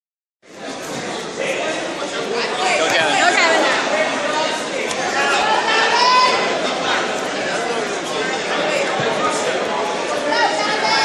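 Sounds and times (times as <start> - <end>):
crowd chatter in echoing hall: 0.4 - 11.0.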